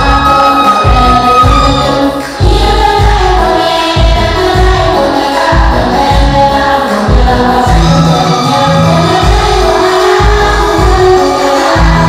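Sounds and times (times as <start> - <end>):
music with heavy bass beat: 0.0 - 12.0
women singing: 0.0 - 12.0.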